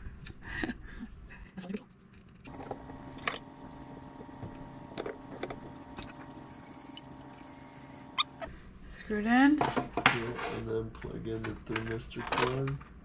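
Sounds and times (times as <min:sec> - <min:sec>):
steady hum: 0:02.5 - 0:08.8.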